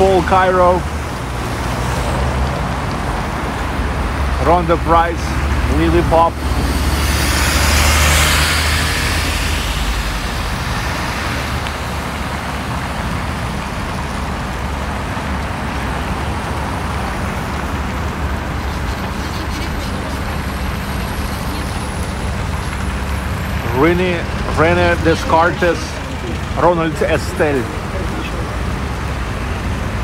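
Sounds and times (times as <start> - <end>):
bus passing close by: 0.0 - 30.0
road traffic noise: 0.0 - 30.0.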